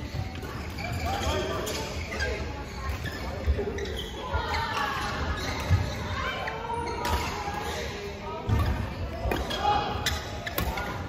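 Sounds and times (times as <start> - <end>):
rackets hitting shuttlecock: 8.5 - 11.0.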